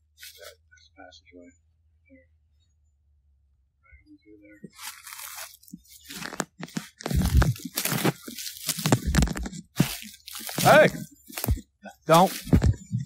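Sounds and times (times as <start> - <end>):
footsteps crunching dry leaves: 4.7 - 12.9
low thumps: 12.4 - 13.0.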